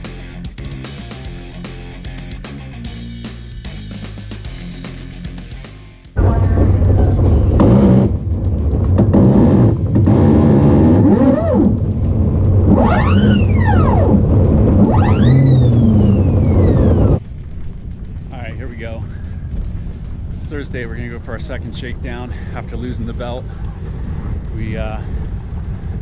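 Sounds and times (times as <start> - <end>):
low rumble of wind and drivetrain: 6.2 - 26.0
electric motor whine: 9.0 - 12.0, 12.6 - 17.2.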